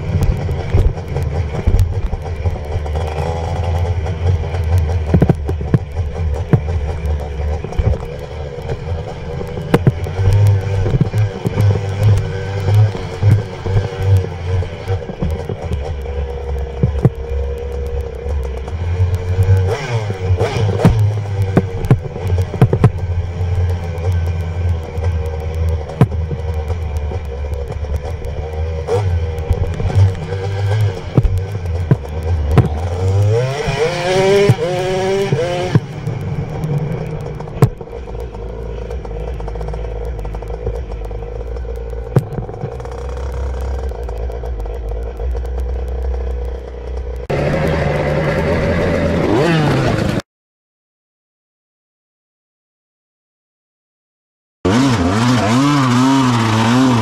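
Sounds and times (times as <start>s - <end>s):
dirt bike engine running: 0.0s - 50.2s, 54.6s - 57.0s.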